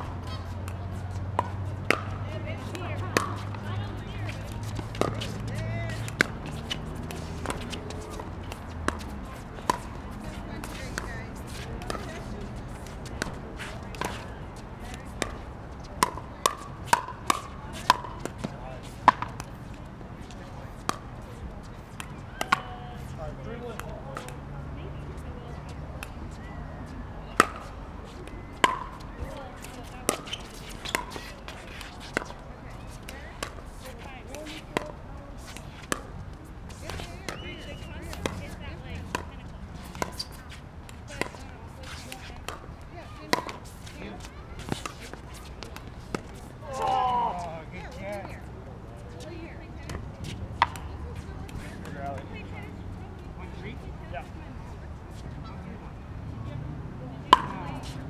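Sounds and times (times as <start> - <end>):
ball bouncing on court: 0.2 - 19.6, 20.8 - 24.4, 27.2 - 36.1, 36.7 - 47.5, 57.3 - 58.0.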